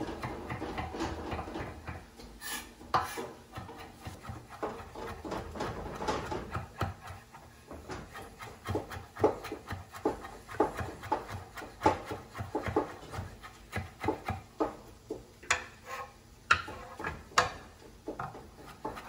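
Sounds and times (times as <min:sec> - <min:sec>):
knife chopping on wooden board: 0:03.0 - 0:15.7, 0:16.5 - 0:19.0.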